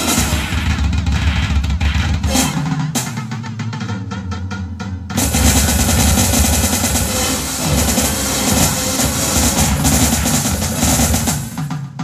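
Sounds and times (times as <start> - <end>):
loud wall of noise music: 0.0 - 1.1, 5.2 - 11.6
drum machine beat: 0.0 - 12.0.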